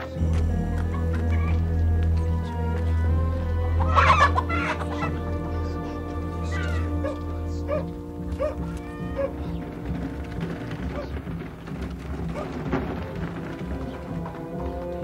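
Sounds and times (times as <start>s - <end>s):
music of held low notes: 0.0s - 15.0s
chickens clucking and squawking: 3.4s - 11.2s.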